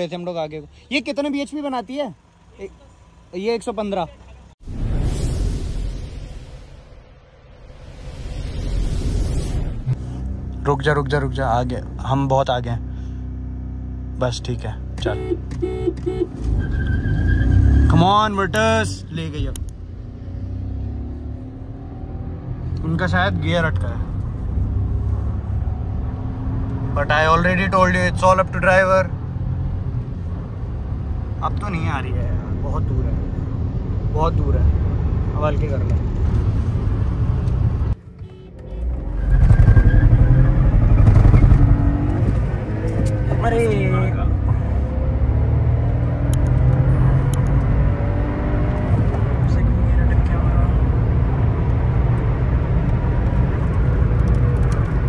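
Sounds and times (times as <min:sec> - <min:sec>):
car engine low rumble: 0:00.0 - 0:04.6, 0:06.6 - 0:55.0.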